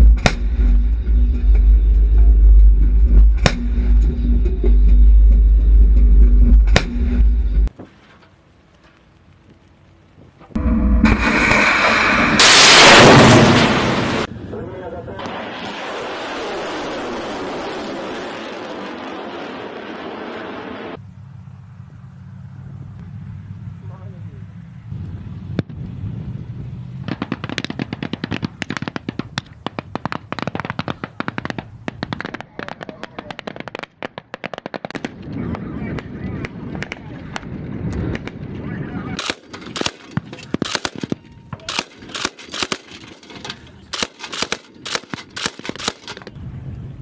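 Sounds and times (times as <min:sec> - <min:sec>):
armoured vehicle engine rumble: 0:00.0 - 0:15.6, 0:19.8 - 0:28.0
automatic gunfire: 0:39.2 - 0:43.2, 0:43.9 - 0:46.2.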